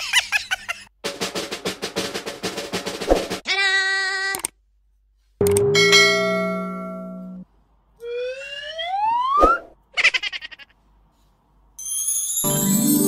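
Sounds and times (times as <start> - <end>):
music: 1.0 - 3.4, 12.3 - 13.0
bright ringing chime: 5.5 - 7.4, 11.8 - 13.0.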